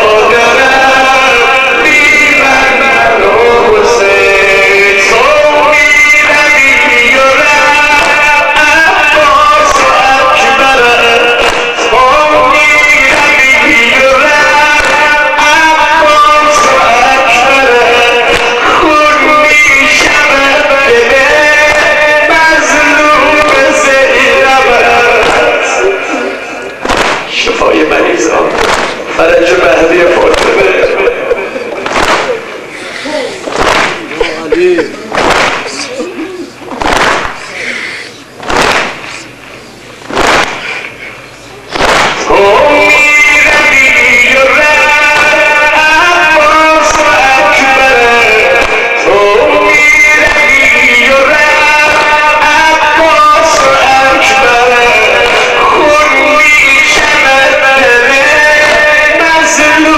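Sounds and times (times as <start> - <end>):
man singing into a microphone: 0.0 - 36.7, 42.2 - 59.9
crowd slapping chests in unison: 7.3 - 8.6, 9.6 - 15.1, 15.8 - 32.7, 33.4 - 37.7, 38.3 - 39.4, 40.0 - 41.1, 41.7 - 46.2, 46.8 - 59.9.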